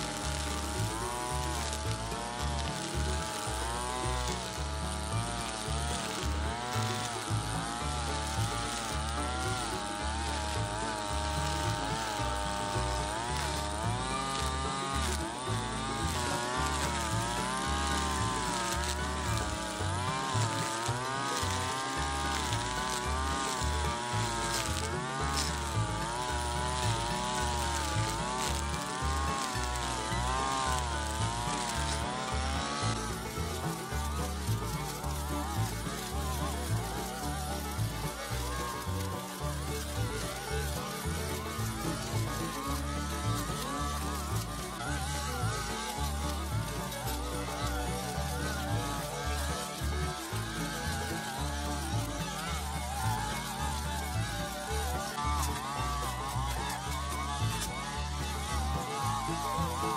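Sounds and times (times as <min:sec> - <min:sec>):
background music: 0:00.0 - 0:59.9
brush cutter engine running: 0:00.0 - 0:59.9.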